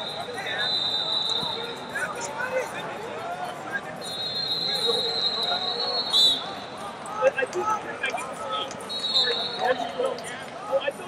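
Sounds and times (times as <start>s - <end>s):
referee's whistle blasts: 0.0s - 1.8s, 4.0s - 6.7s, 8.9s - 10.1s
crowd and coaches chattering: 0.0s - 11.0s.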